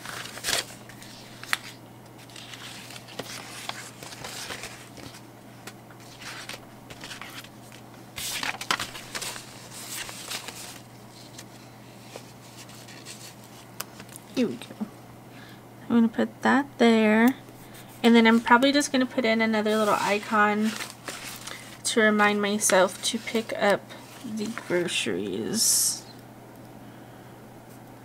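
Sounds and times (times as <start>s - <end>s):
paper sheets rustling: 0.0s - 14.2s, 17.6s - 25.0s.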